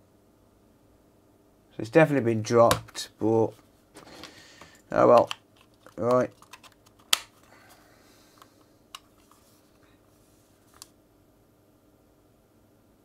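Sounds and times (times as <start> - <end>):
plastic controller shell clicks: 5.1 - 7.3.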